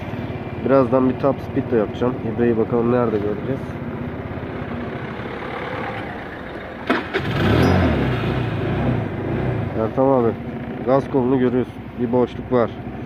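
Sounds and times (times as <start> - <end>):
scooter engine revving: 4.0 - 11.0.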